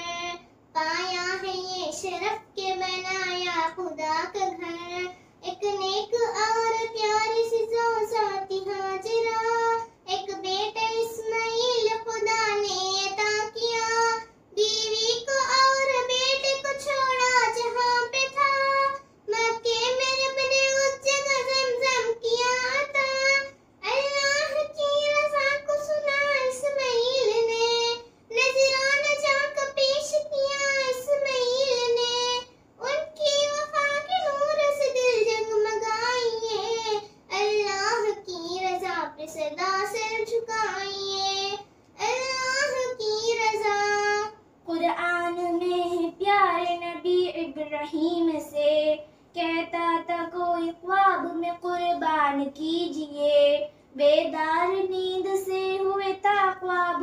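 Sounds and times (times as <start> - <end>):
girl singing unaccompanied: 0.0 - 57.0.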